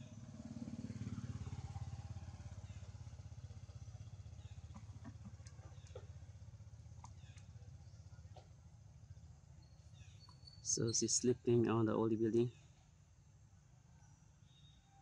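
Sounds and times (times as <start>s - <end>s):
distant vehicle engine drone: 0.0s - 12.5s.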